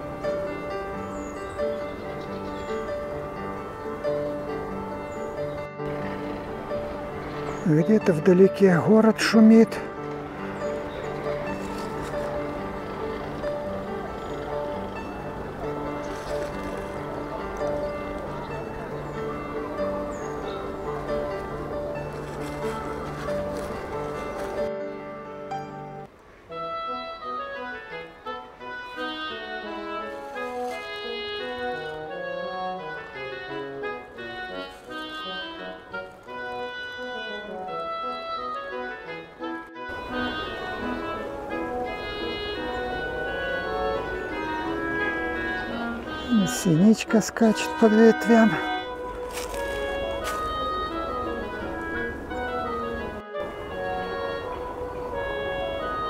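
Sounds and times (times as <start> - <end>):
instrumental background music: 0.0 - 56.0.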